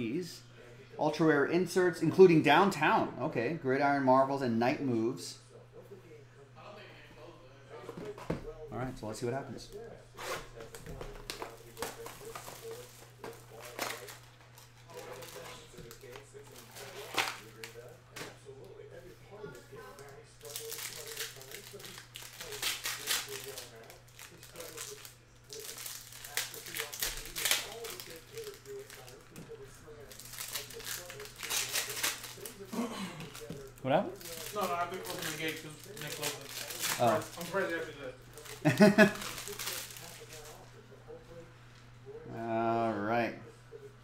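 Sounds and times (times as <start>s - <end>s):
card pack wrappers ripping: 10.2s - 18.2s, 19.8s - 40.6s.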